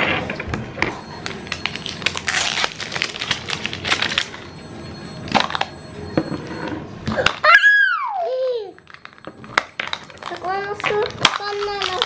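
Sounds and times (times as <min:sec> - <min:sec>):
plastic wrapper tearing and crinkling: 0:01.5 - 0:04.4, 0:08.8 - 0:12.0.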